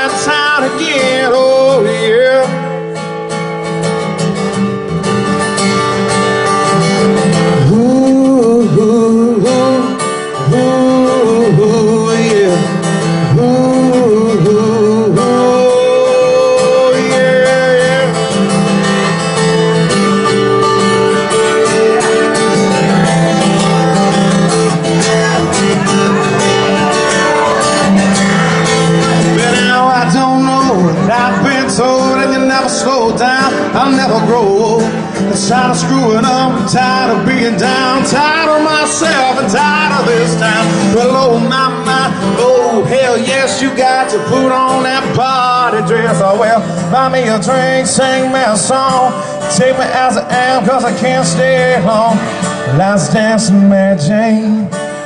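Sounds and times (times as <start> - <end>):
acoustic guitar strummed and picked: 0.0 - 55.0.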